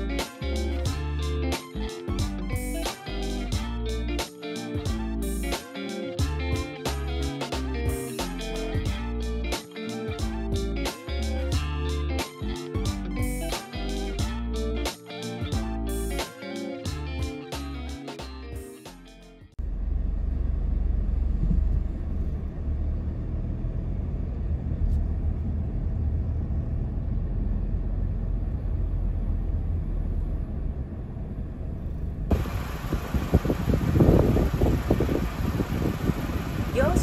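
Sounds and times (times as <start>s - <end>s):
car driving rumble from inside: 19.6s - 37.0s.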